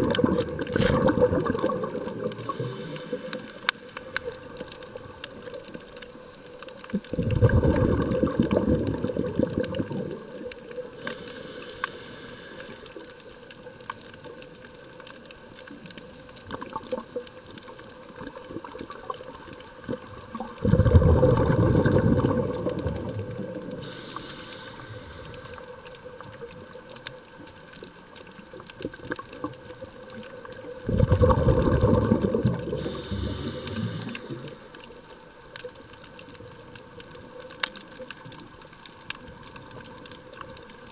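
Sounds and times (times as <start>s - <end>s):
exhaled bubbles rushing: 0.0s - 3.6s, 6.9s - 10.6s, 18.2s - 23.9s, 30.4s - 34.6s
faint clicks: 0.0s - 20.6s, 21.3s - 30.8s, 31.8s - 40.9s
regulator inhalation hiss: 2.4s - 4.3s, 11.0s - 13.1s, 23.8s - 25.8s, 32.7s - 34.8s.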